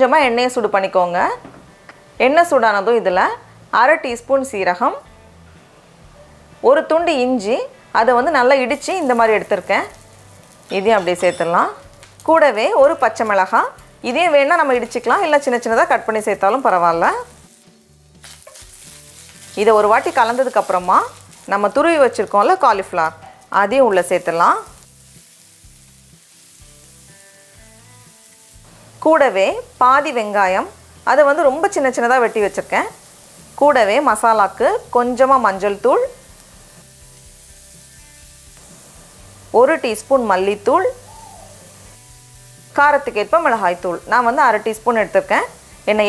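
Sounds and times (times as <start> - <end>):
soft background music chord: 0.0 - 46.0
spices sizzling in oil: 0.0 - 46.0.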